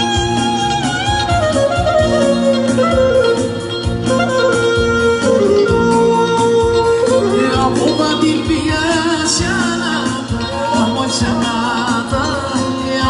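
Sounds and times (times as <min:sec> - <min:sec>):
clarinet playing folk melody: 0:00.0 - 0:13.0
live band beat: 0:00.0 - 0:13.0.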